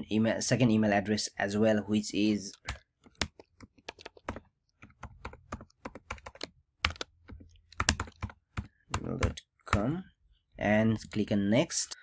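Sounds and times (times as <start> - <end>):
typing on keyboard: 2.6 - 9.9.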